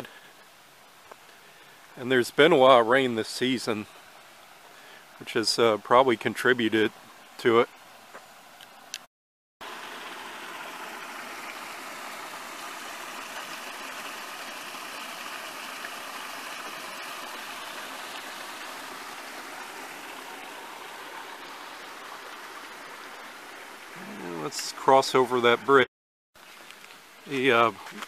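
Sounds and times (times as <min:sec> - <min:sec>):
creek water spilling into a pool: 0:09.6 - 0:25.6.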